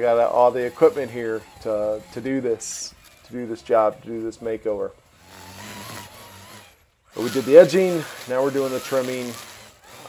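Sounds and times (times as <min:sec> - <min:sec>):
string trimmer motor whine: 0:00.0 - 0:10.0.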